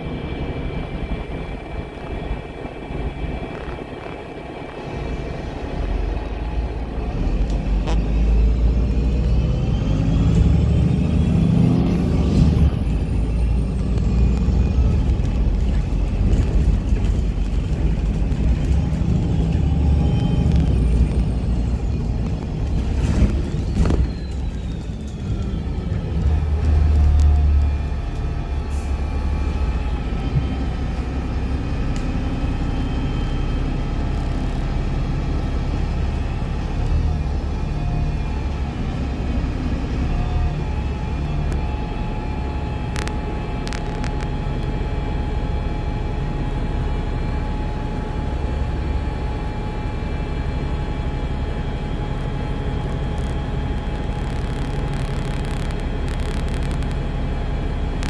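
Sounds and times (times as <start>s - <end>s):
bus engines passing: 0.0s - 58.0s
faint clicks: 52.9s - 57.0s.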